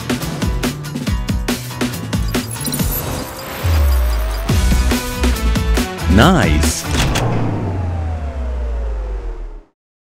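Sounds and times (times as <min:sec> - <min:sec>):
power-down whine winding down: 0:06.9 - 0:09.8.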